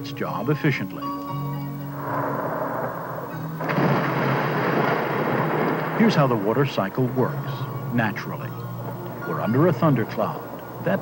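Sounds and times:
thunder rumbling: 1.8 - 11.0.

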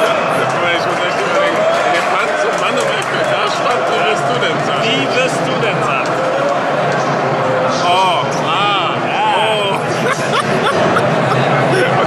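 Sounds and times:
crowd chatter: 0.0 - 12.0
men laughing: 8.7 - 12.0.

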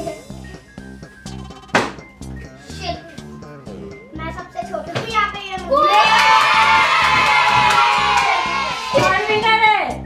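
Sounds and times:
background music with steady beat: 0.0 - 10.0
children shouting and cheering: 5.6 - 9.8.

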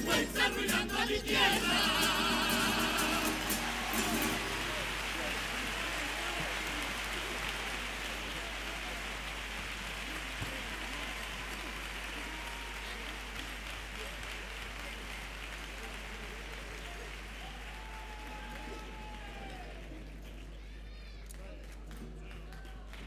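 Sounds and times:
audience applauding: 1.6 - 23.0.

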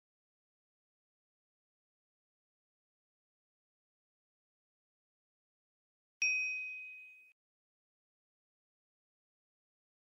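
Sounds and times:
bell-like ding: 6.2 - 7.4.

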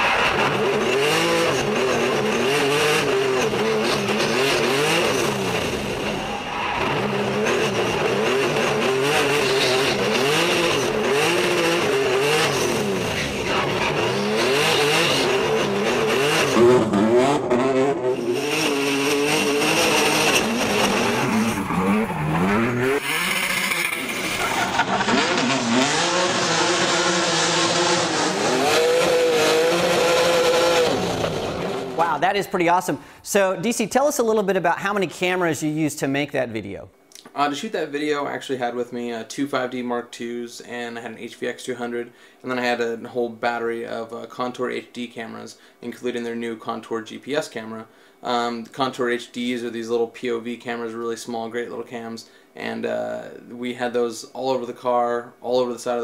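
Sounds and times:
race car engine revving: 0.0 - 32.0.

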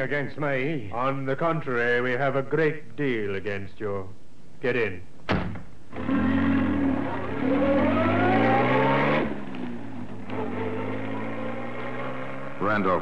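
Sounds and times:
car engine pulling away: 5.9 - 13.0.

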